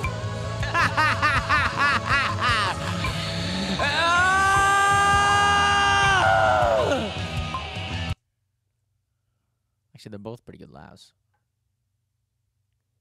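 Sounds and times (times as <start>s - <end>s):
backing track music: 0.0s - 8.2s
man laughing theatrically: 0.6s - 3.0s
long high vocal cry: 3.8s - 7.2s.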